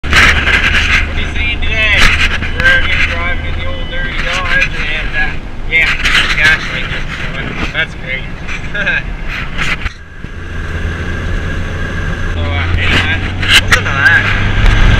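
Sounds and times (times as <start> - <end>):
engine and road drone: 0.0 - 14.9
man talking: 1.0 - 9.1, 12.3 - 14.4.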